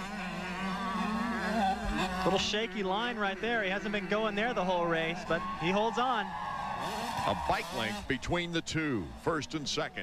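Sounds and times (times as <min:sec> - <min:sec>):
motocross bike engine buzzing: 0:00.0 - 0:08.5.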